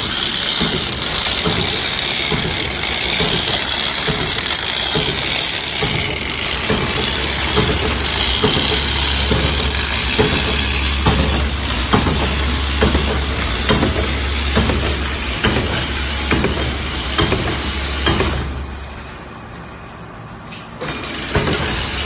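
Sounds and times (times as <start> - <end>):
fin rolling machine humming: 0.0 - 22.0.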